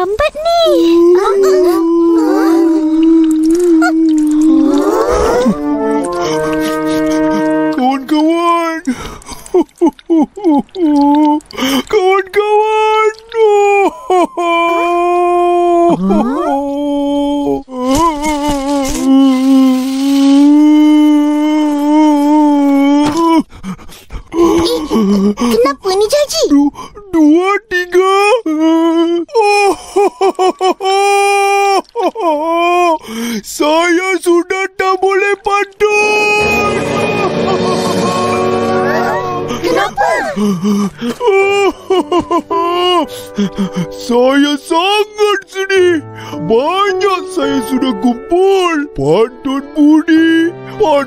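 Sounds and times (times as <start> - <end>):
cartoon boy's voice wailing: 0.0 - 5.6, 12.1 - 19.6, 36.0 - 40.4
long howling note: 36.4 - 39.6.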